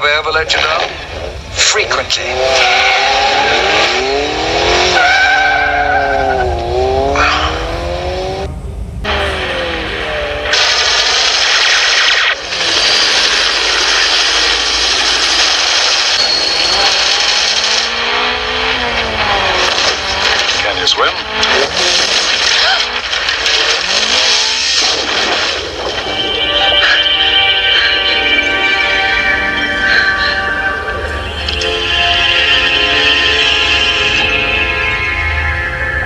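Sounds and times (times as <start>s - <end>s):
car engine revving: 0.5s - 36.0s
tyre squeal: 4.8s - 7.6s, 16.0s - 18.4s
loud rushing noise: 6.4s - 35.1s.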